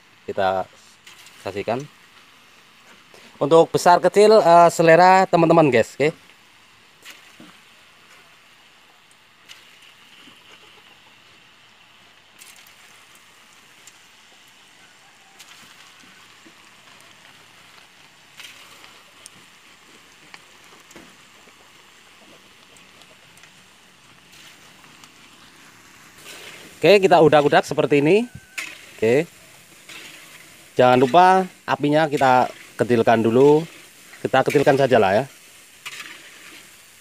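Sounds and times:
batter deep-frying in oil: 0:00.0 - 0:37.0.

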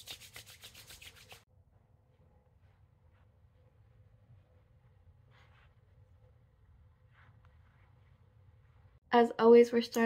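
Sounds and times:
palms rubbing lotion: 0:00.0 - 0:01.4.

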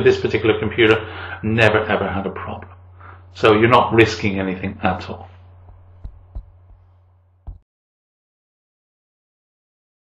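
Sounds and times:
faint electrical hum: 0:00.0 - 0:07.6
soft low thumps: 0:05.4 - 0:07.6.

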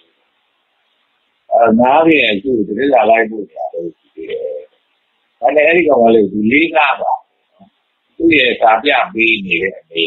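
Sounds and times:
man speaking: 0:01.5 - 0:04.7, 0:05.4 - 0:07.2, 0:08.2 - 0:10.0.

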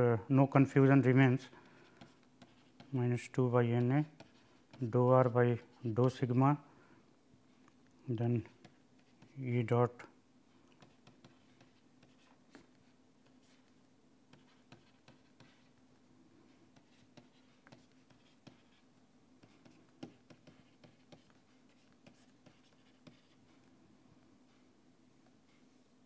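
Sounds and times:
low steady hum: 0:00.0 - 0:26.0
stylus tapping on pen tablet: 0:19.4 - 0:21.4.

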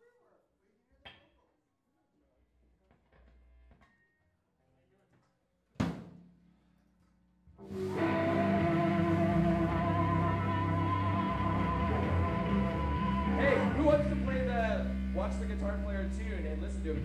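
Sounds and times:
electric guitar chord ringing: 0:07.6 - 0:17.0
rock band playing: 0:07.6 - 0:17.0.

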